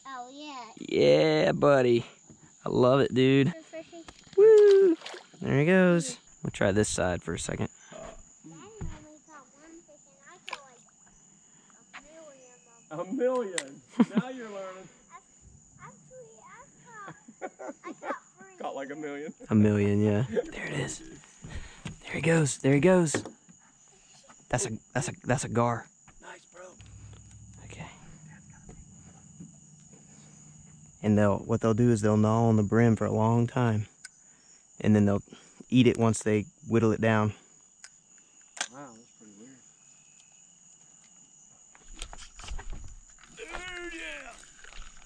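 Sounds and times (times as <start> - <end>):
high-pitched insect drone: 0.1 - 45.0
quiet indistinct talking: 23.6 - 33.1.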